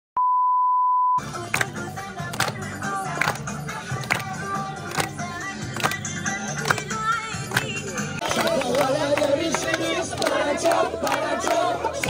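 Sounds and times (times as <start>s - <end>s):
test-tone beep: 0.2s - 1.2s
music: 1.2s - 12.0s.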